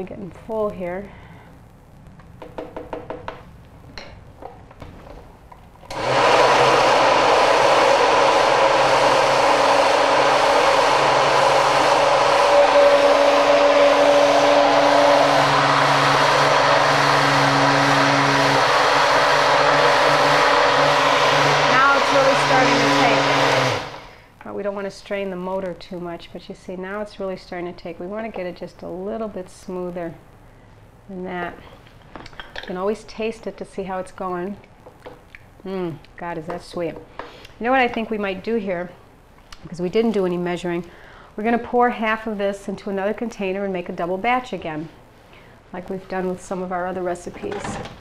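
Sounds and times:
blender motor running: 5.9s - 24.2s.

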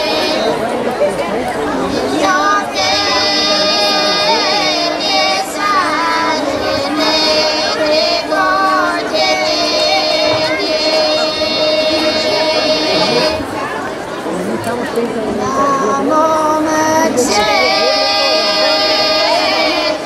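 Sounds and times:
women's choir singing a cappella: 0.0s - 13.6s, 15.4s - 20.0s.

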